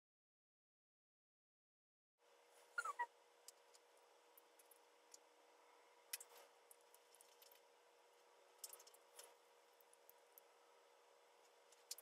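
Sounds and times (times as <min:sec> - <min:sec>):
faint steady hum: 0:02.2 - 0:12.0.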